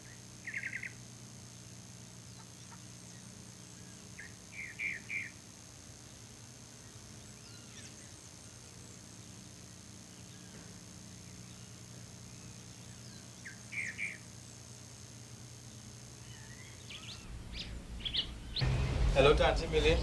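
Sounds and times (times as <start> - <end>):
steady low hum: 0.0 - 20.0
bird trilling and chirping: 13.1 - 14.2, 16.2 - 18.6.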